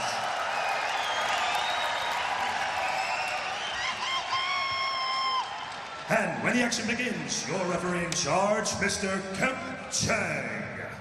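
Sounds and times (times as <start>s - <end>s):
crowd cheering and applauding: 0.0s - 8.0s.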